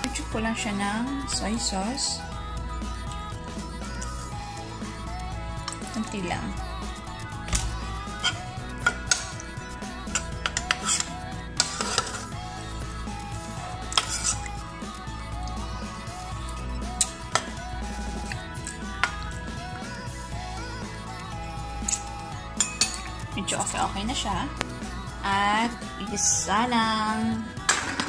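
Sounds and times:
background music: 0.0 - 28.0
utensil clinking on metal pot: 22.6 - 23.1.

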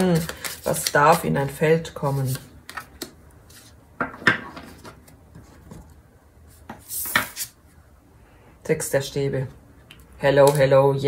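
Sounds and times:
papery card scrape: 0.0 - 2.5.

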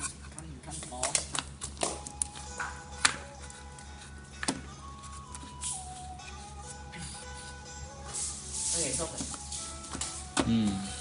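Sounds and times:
soft voice: 10.4 - 11.0.

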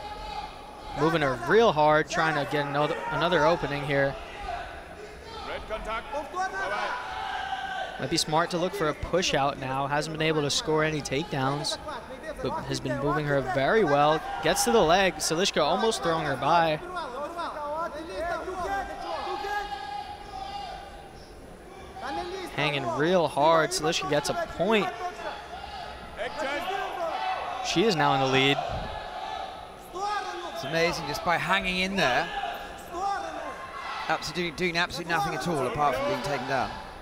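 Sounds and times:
commentary: 7.8 - 20.9, 21.7 - 37.0.

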